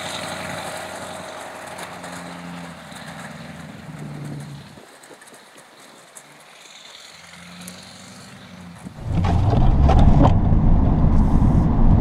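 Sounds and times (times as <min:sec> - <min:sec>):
diesel truck engine rumbling: 0:08.4 - 0:12.0
knocks and rattles: 0:09.0 - 0:10.9.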